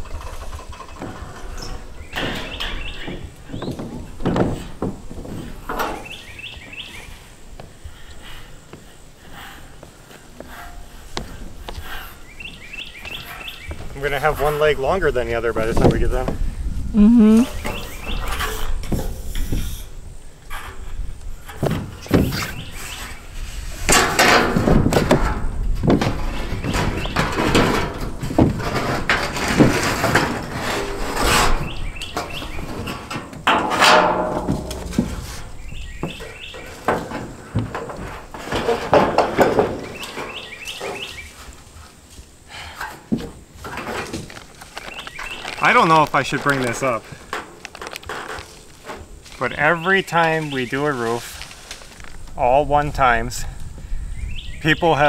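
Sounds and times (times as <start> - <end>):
metal roofing sheet wobbling and knocking: 0.0 - 6.2, 23.8 - 41.1
metal roofing sheet clattering: 0.0 - 7.1, 21.4 - 52.2.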